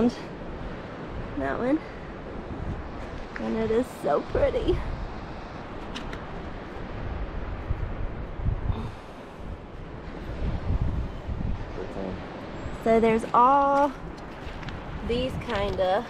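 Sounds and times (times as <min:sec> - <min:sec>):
surf hiss: 0:00.0 - 0:16.0
wind buffeting microphone: 0:00.0 - 0:16.0.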